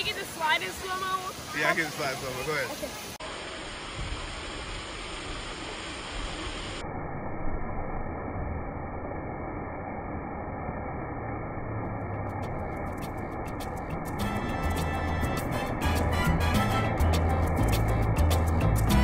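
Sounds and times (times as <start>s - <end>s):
water running and spraying: 0.0s - 6.8s, 12.2s - 19.0s.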